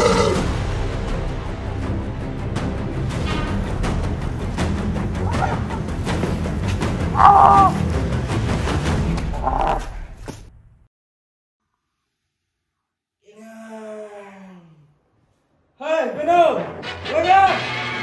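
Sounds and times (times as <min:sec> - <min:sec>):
music with low pulse: 0:00.0 - 0:09.6
high-pitched squawk-like cries: 0:07.2 - 0:07.8.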